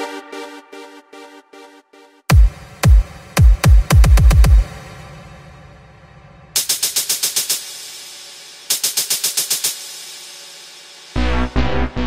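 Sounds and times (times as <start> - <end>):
fast electronic hi-hat roll: 6.6 - 11.5.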